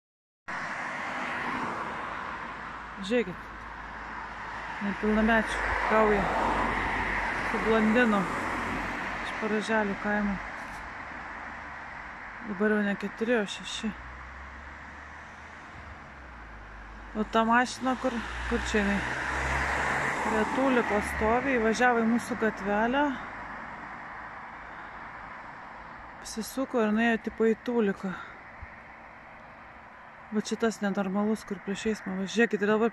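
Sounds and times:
car driving on asphalt: 0.5 - 32.9
road traffic noise: 0.5 - 32.9.

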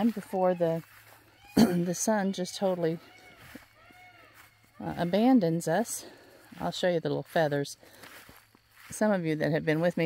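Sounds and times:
distant animal calls: 0.0 - 6.6.

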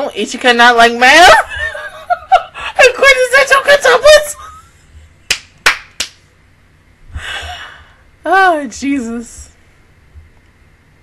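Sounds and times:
hand claps: 5.3 - 6.2
breathy exhale: 7.1 - 8.0.

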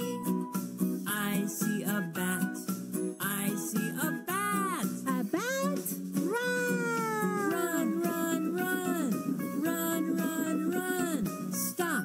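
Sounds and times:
children's song music: 0.0 - 12.0
high cartoonish voice crying: 5.4 - 9.0.

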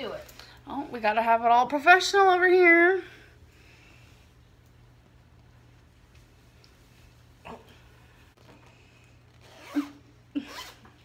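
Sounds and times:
jacket zipper pulled up: 9.2 - 11.0.

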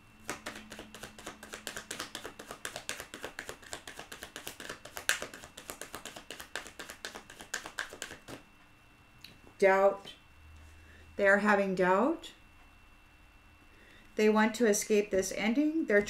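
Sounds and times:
cards being shuffled: 0.2 - 8.4.

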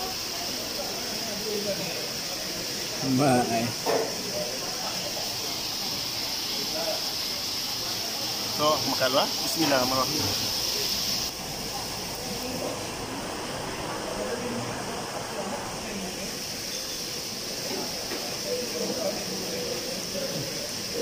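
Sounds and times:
faint voices murmuring: 0.0 - 21.0
steady hiss: 0.0 - 21.0.

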